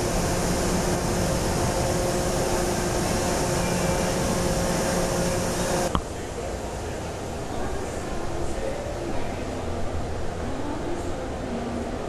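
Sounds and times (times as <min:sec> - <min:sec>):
aircraft engine drone: 0:00.0 - 0:06.0.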